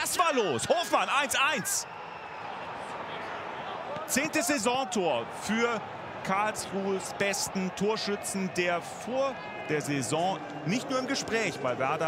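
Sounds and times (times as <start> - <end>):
stadium crowd hum: 0.0 - 12.0.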